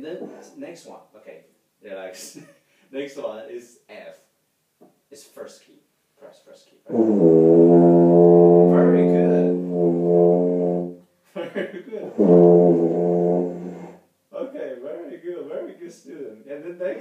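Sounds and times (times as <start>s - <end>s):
tuba low held notes: 6.9s - 11.0s, 12.0s - 14.0s.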